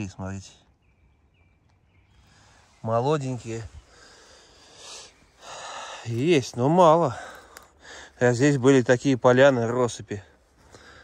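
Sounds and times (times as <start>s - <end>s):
man breathing close to microphone: 3.7s - 6.1s, 10.6s - 11.0s.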